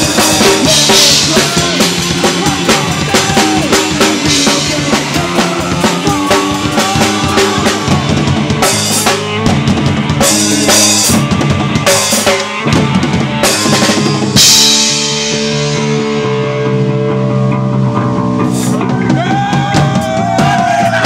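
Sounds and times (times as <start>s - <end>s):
fast drums: 0.0s - 16.6s, 18.2s - 21.0s
rock band playing live: 0.0s - 21.0s.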